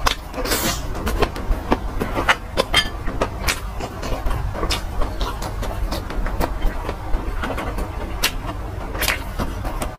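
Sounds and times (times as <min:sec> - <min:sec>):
chewing french fries: 0:00.0 - 0:09.9
low rumble: 0:00.3 - 0:09.9.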